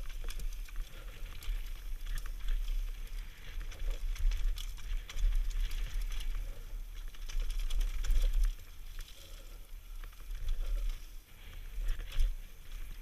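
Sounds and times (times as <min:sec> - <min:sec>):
bike rattling clicks: 0:00.0 - 0:13.0
tyres rolling over dry dirt: 0:00.0 - 0:13.0.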